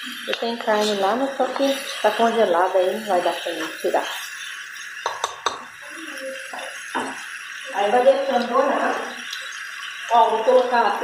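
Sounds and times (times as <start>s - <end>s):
meat frying hiss: 0.0s - 11.0s
plastic spoon knocking metal pot: 5.0s - 5.7s.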